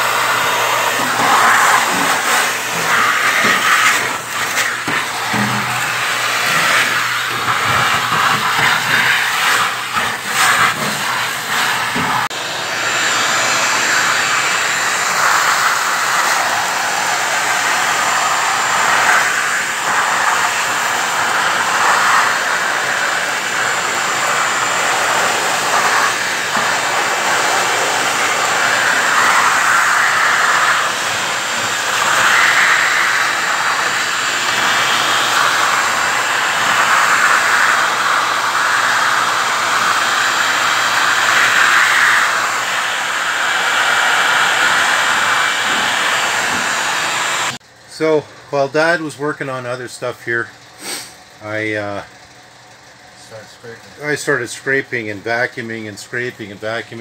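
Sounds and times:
shop vacuum suction rushing: 0.0s - 52.1s, 53.2s - 57.0s
vacuum motor whine: 0.0s - 57.0s.

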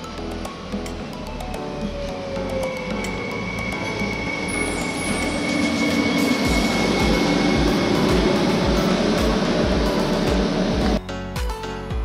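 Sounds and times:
high whine: 0.0s - 11.0s
train wheels rushing: 1.9s - 11.0s.

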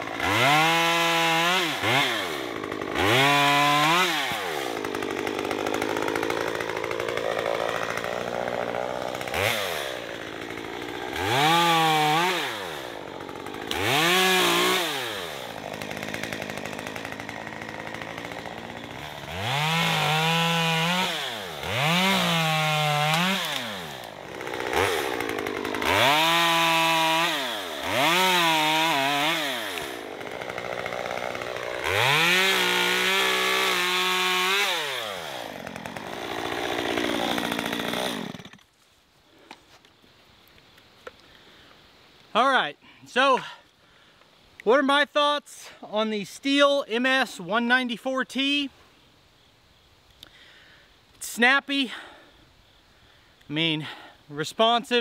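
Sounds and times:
chainsaw revving and idling: 0.0s - 38.7s, 51.2s - 52.3s, 53.4s - 55.0s.

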